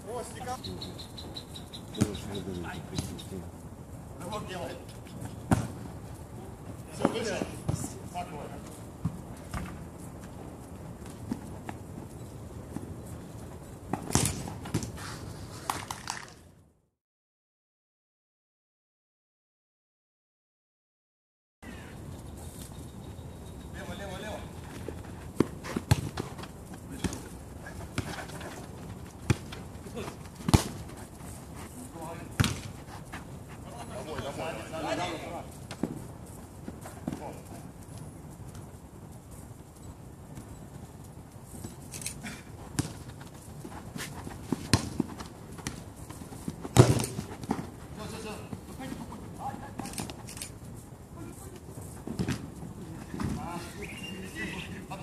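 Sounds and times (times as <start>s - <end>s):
football kick thuds: 5.4s - 5.8s, 13.9s - 15.0s, 25.4s - 28.4s, 29.0s - 30.9s, 32.3s - 32.8s, 42.7s - 43.4s, 44.0s - 47.7s, 52.1s - 53.5s.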